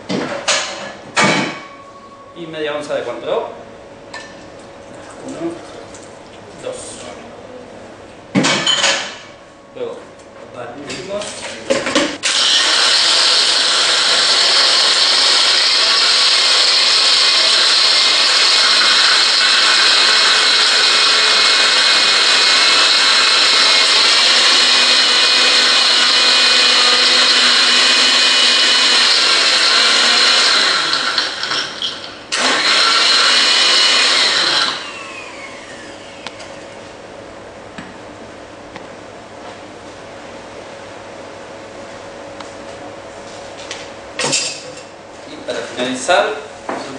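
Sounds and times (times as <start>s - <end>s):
blender crushing ice: 12.2s - 36.3s.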